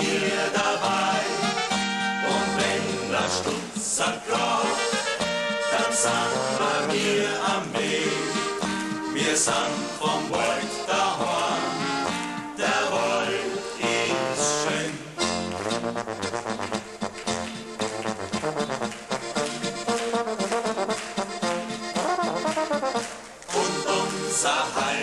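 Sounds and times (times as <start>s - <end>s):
accordion: 0.0s - 25.0s
guitar: 0.0s - 25.0s
tuba: 0.0s - 25.0s.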